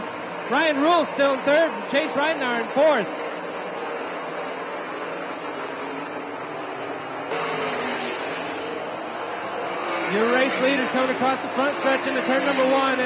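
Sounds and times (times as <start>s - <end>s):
race car engines: 0.0s - 13.0s.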